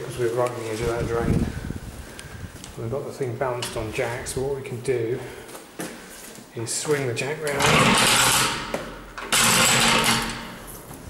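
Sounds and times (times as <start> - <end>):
jack wheels grinding on concrete: 7.5 - 10.6.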